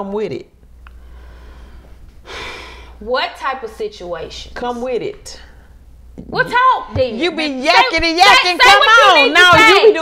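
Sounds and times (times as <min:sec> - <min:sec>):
low electrical hum: 0:00.0 - 0:10.0
person breathing: 0:00.9 - 0:03.0.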